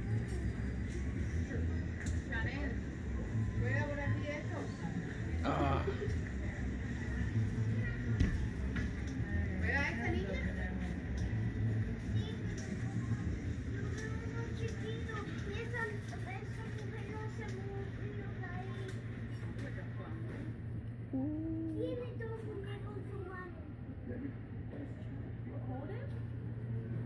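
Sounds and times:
music: 0.0s - 19.4s
steady low hum: 0.0s - 27.0s.

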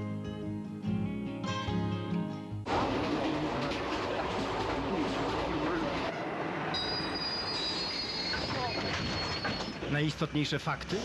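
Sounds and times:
train running on rails: 2.7s - 11.0s
high wheel squeal: 6.0s - 9.9s.

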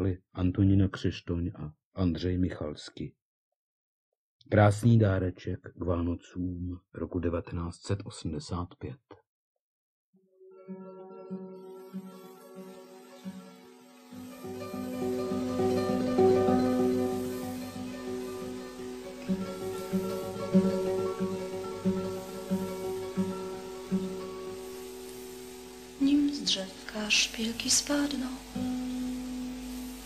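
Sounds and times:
plucked acoustic guitar: 14.3s - 24.6s.

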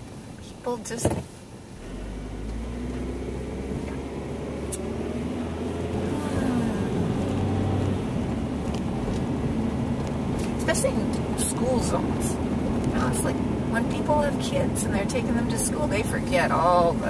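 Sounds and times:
road noise: 0.0s - 17.0s
car engine from inside cabin: 0.1s - 17.0s.

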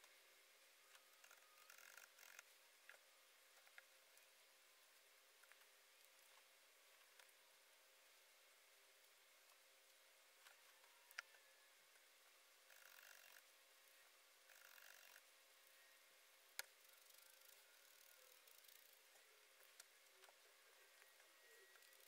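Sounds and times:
small tool clicks: 0.9s - 3.0s, 12.7s - 13.4s, 14.5s - 15.2s, 16.6s - 19.0s.

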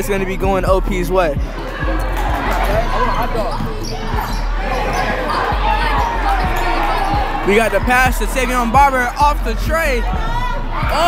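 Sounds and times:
voices nearby: 0.0s - 11.0s.

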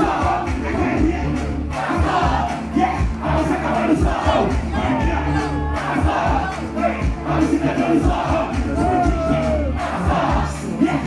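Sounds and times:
crowd shouting and cheering: 0.0s - 11.0s
gospel rap music over loudspeakers: 0.0s - 11.0s.

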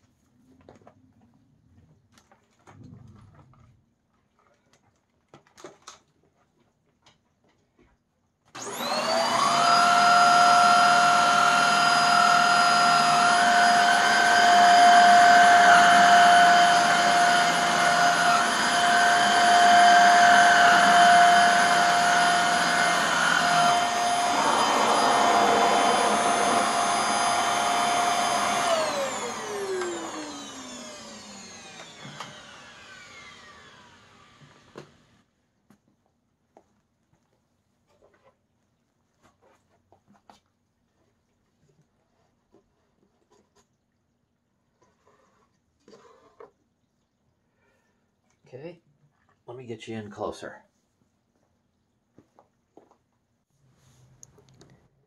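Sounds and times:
vacuum cleaner motor whine: 8.6s - 35.1s.

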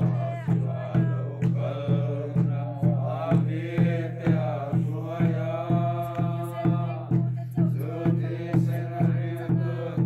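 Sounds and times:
congregation singing a hymn: 0.0s - 10.0s
hand drum beats: 0.0s - 10.0s.

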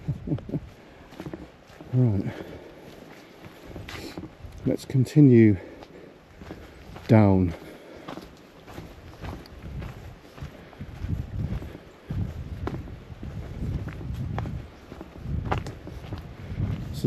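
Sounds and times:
wind rumble on microphone: 0.0s - 1.5s, 8.7s - 17.0s
footsteps on dirt path: 0.0s - 17.0s.

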